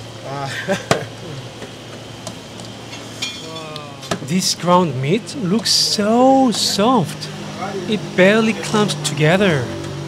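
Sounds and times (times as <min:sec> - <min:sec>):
people talking: 0:00.2 - 0:01.5, 0:03.4 - 0:09.8.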